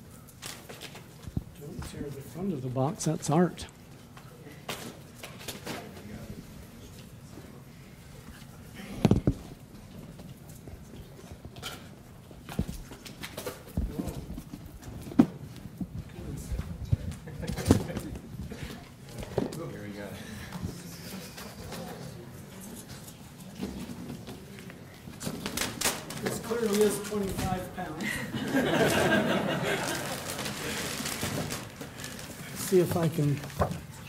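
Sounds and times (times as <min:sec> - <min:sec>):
quiet murmuring voices: 0:13.6 - 0:34.0.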